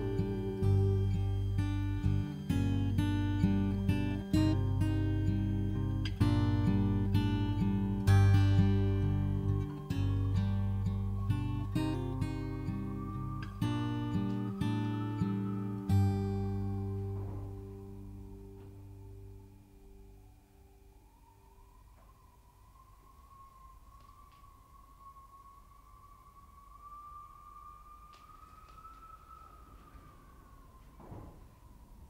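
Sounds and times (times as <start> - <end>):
acoustic guitar strumming: 0.0 - 19.4.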